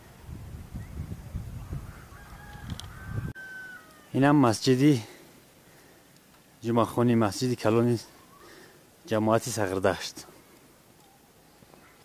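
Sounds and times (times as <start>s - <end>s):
distant rooster crowing: 1.8s - 4.2s.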